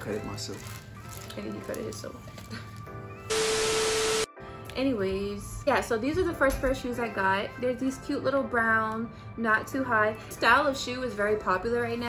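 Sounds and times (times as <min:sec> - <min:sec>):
quiet background music: 0:00.0 - 0:12.0
steady beep tone: 0:03.3 - 0:04.3
tv static hiss: 0:03.3 - 0:04.3.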